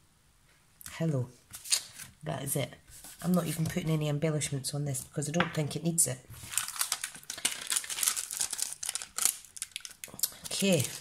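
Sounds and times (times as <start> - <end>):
plastic sheets crinkling: 6.3 - 11.0.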